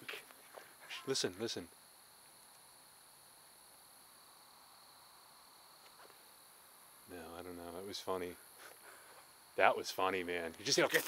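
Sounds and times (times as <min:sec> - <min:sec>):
night insects droning: 0:00.0 - 0:11.0.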